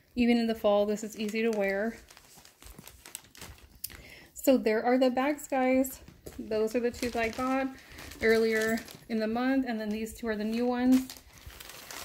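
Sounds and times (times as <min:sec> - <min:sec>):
backpack rustling and crinkling: 0:01.2 - 0:03.9, 0:06.0 - 0:12.0.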